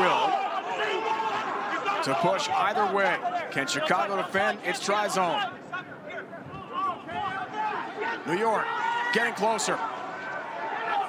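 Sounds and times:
crowd shouts and calls: 0:00.0 - 0:11.0
stadium crowd: 0:00.0 - 0:11.0.

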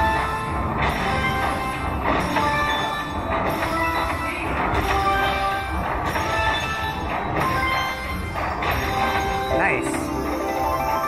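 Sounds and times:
slot machine chiming tones: 0:09.0 - 0:11.0.

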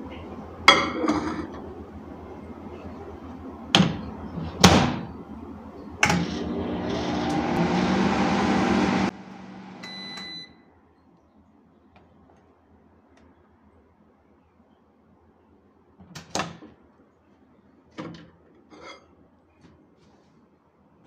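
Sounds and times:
microwave oven humming: 0:06.0 - 0:10.6.

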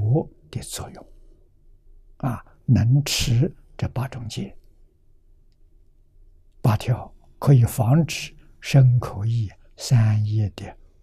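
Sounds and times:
elderly man lecturing: 0:00.0 - 0:01.1, 0:02.2 - 0:04.6, 0:06.6 - 0:10.8.

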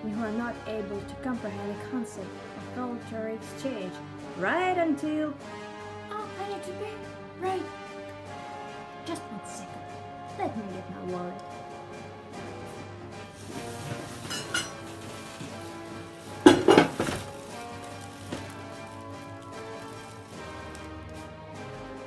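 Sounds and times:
background music: 0:00.0 - 0:22.0
plastic bags crinkling: 0:13.3 - 0:21.4.

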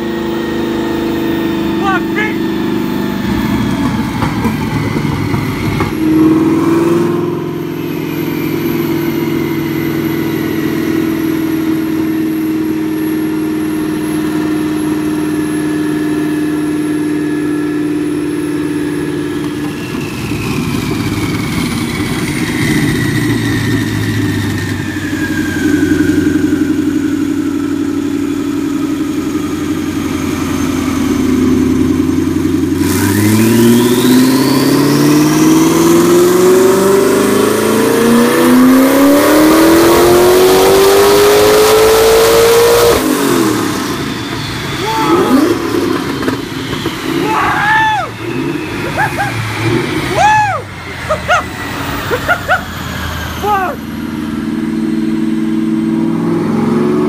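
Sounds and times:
car engine revving on dyno: 0:00.0 - 0:57.0
turbo whine: 0:00.0 - 0:57.0.

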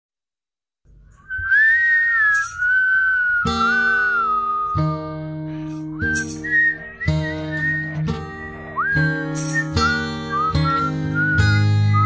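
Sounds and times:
whistled tune: 0:01.1 - 0:12.0
guitar chords: 0:03.2 - 0:12.0.

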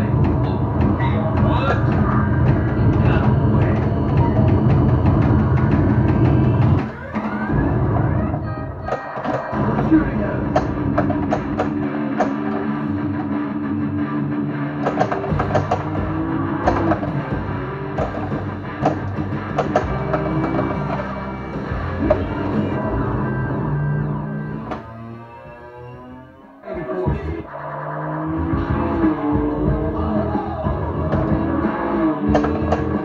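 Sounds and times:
rock-style game music: 0:00.0 - 0:26.2, 0:26.8 - 0:33.0
pinball flippers and ball clacking: 0:08.1 - 0:09.9, 0:10.5 - 0:13.4, 0:14.8 - 0:22.8, 0:32.2 - 0:33.0
voice callouts: 0:26.6 - 0:31.4.

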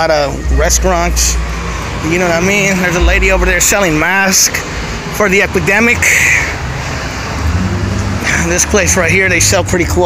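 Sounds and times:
passing cars rumble: 0:00.0 - 0:10.0.

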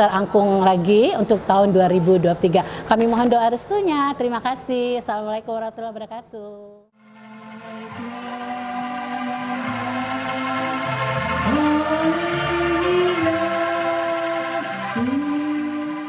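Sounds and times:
woman singing into microphone: 0:11.4 - 0:16.0.

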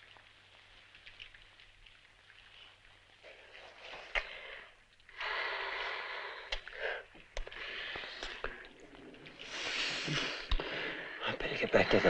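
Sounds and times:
people breathing: 0:04.1 - 0:08.6, 0:09.4 - 0:11.3.

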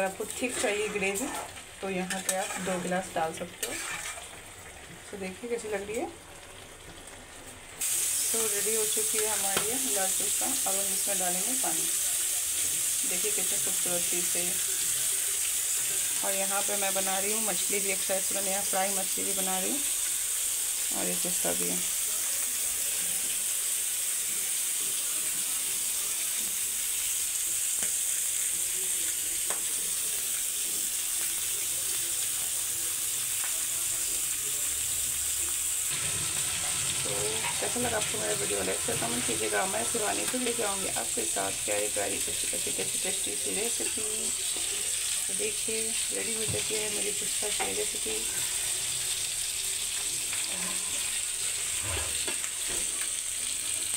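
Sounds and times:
fish sizzling in hot oil: 0:00.0 - 0:53.9.

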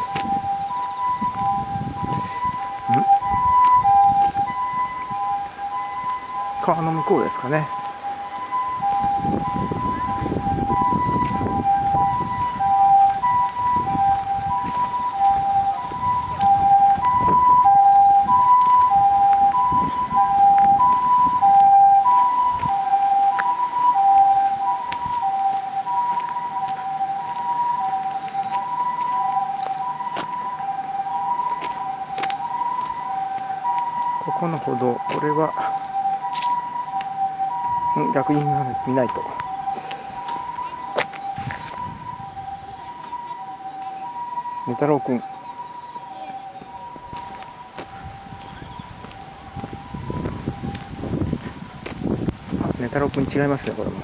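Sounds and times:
ambulance siren two-tone wail: 0:00.0 - 0:54.0.

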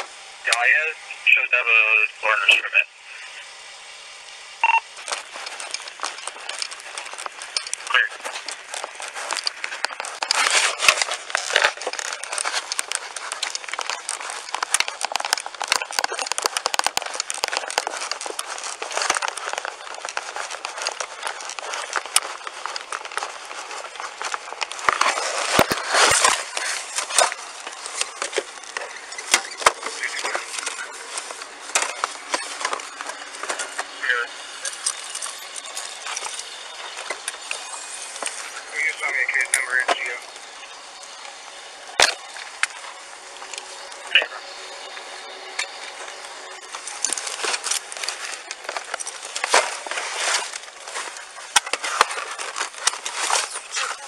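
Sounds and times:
indistinct voices: 0:00.0 - 0:03.6, 0:04.8 - 0:54.0
clothing rustling and scraping: 0:04.6 - 0:54.0.

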